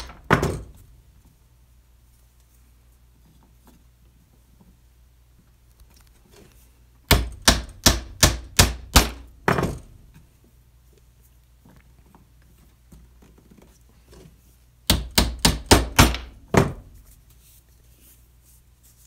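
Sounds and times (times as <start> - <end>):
hammer driving dowels into wood: 0.0 - 0.7, 7.1 - 9.9, 14.9 - 16.9.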